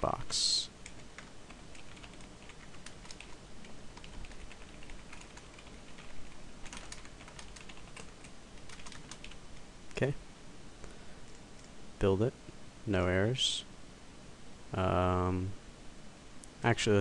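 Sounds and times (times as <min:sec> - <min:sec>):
typing on computer keyboard: 0:00.8 - 0:03.4, 0:04.0 - 0:09.4.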